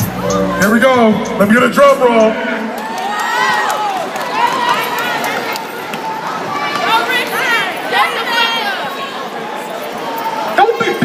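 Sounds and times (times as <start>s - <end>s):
crowd drumming rapid patter: 2.6s - 8.8s
crowd shouting and whooping: 2.6s - 11.0s.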